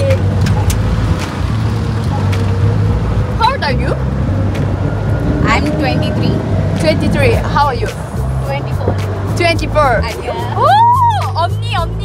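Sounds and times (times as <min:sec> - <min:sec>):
auto-rickshaw engine rumbling: 0:00.0 - 0:12.0.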